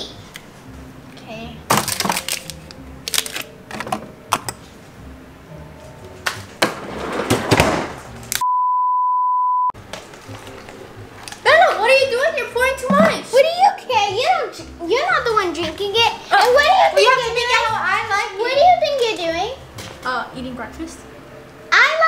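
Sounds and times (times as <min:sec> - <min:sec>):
censor bleep: 0:08.4 - 0:09.8.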